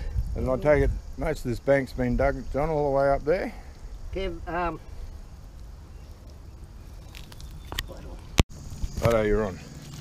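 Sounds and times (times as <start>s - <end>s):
wind on microphone: 0.0s - 2.8s.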